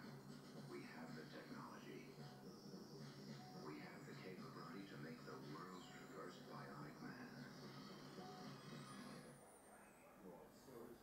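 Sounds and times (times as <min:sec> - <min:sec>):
faint film soundtrack: 0:00.0 - 0:11.0.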